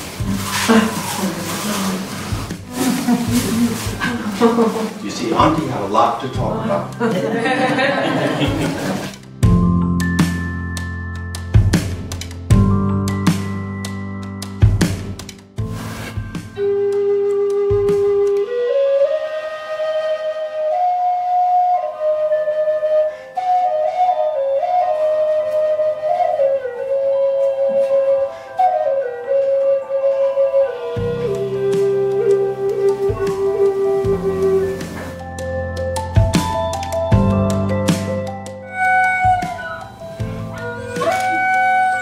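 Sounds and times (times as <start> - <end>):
wooden flute melody: 0.0 - 9.2, 16.1 - 42.0
laughter: 7.0 - 9.1.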